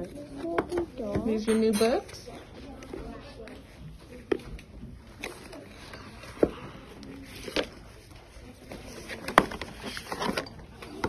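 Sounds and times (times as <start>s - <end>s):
books handled in cardboard box: 2.6s - 11.0s.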